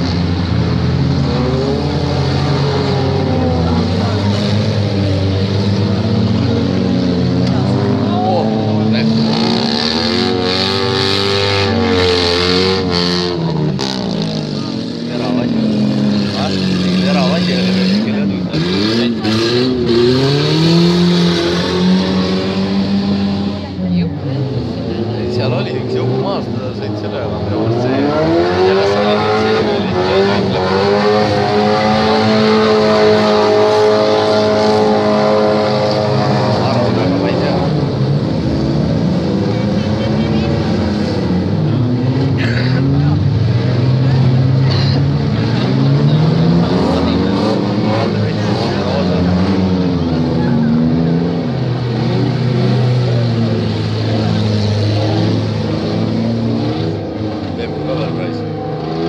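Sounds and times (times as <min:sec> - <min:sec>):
car engines revving hard: 0:00.0 - 0:59.0.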